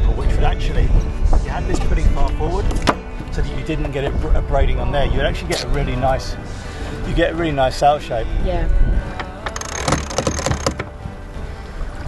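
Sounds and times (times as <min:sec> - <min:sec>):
water noise: 0:00.0 - 0:12.0
wind: 0:00.0 - 0:12.0.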